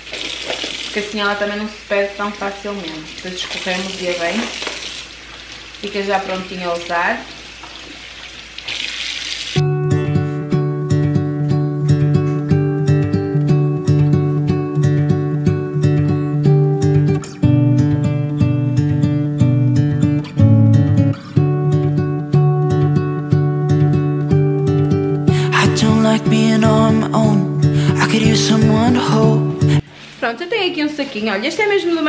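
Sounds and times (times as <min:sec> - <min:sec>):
strummed acoustic guitar: 0:09.6 - 0:29.9.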